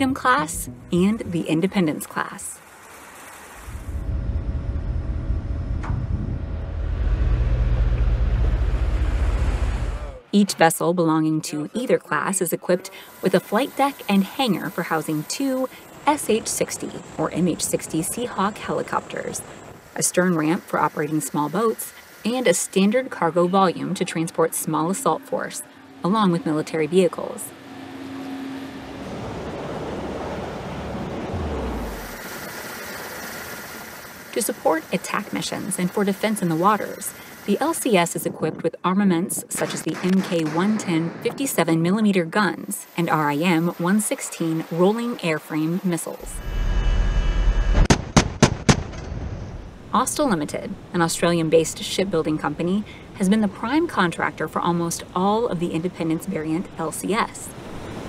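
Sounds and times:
rumbling mechanical noise: 0:03.6 - 0:10.4, 0:13.1 - 0:36.5
wind buffeting microphone: 0:03.7 - 0:10.0
deep tone sliding down: 0:03.7 - 0:10.3, 0:25.6 - 0:32.3
rush of the sea: 0:28.8 - 0:35.9, 0:57.0 - 0:58.0.

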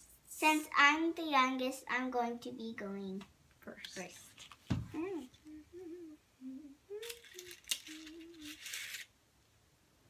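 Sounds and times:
person humming a tune: 0:04.9 - 0:08.7
paper candy cup rustling: 0:07.0 - 0:09.1.

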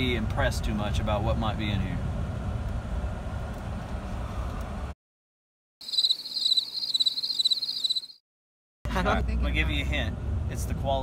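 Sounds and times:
crickets chirping: 0:05.8 - 0:08.2.

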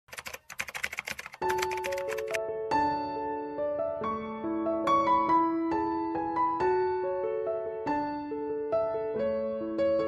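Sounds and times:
rapid keyboard typing clicks: 0:00.1 - 0:02.4
piano music: 0:00.1 - 0:10.0.

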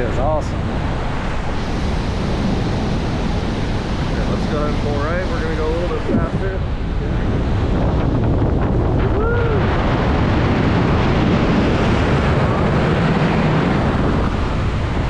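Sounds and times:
wind rushing over microphone: 0:00.0 - 0:15.0.

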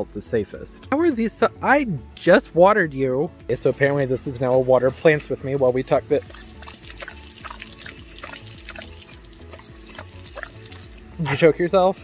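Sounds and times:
hose water spraying: 0:03.5 - 0:11.5
dog lapping water: 0:06.1 - 0:11.2.

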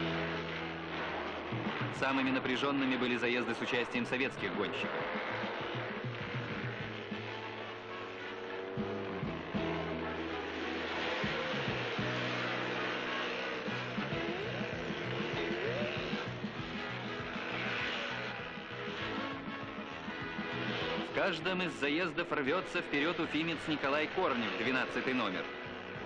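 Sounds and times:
background music of held notes: 0:00.0 - 0:26.0.

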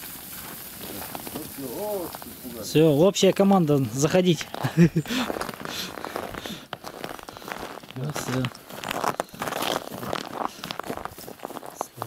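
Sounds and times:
footsteps crunching on frosty straw: 0:00.0 - 0:12.0.

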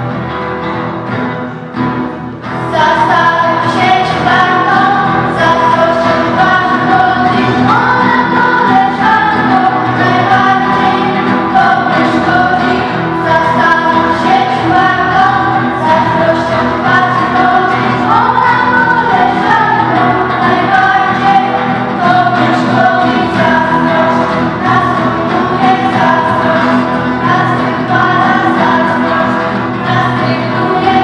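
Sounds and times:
girls singing together: 0:02.6 - 0:31.0.

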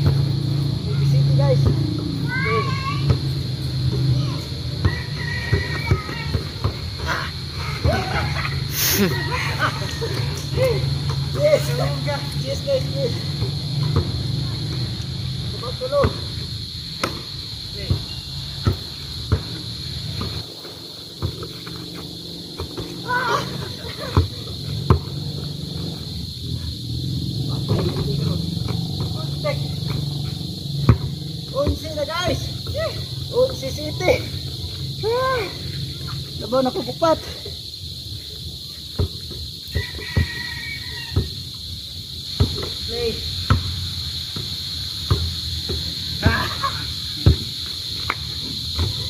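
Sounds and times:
basketball bouncing on hard ground: 0:00.0 - 0:00.6, 0:03.0 - 0:07.0, 0:12.6 - 0:23.2, 0:23.9 - 0:26.6, 0:27.3 - 0:33.6, 0:38.9 - 0:41.5, 0:42.3 - 0:46.5, 0:47.2 - 0:49.0
crickets chirring: 0:00.0 - 0:49.0
basketball bouncing: 0:24.1 - 0:25.3.

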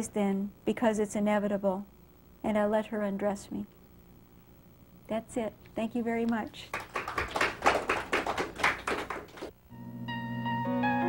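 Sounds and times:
audience applauding: 0:06.7 - 0:09.5.

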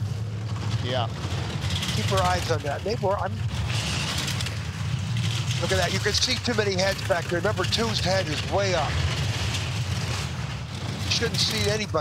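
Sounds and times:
bobsleigh rumbling on ice: 0:00.0 - 0:12.0.

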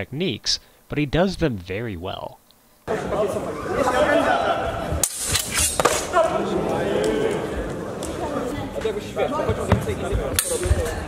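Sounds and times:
voices echoing in a hall: 0:02.9 - 0:11.0.

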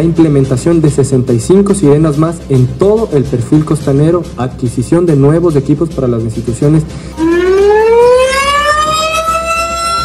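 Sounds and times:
warning siren wailing: 0:07.2 - 0:10.0.

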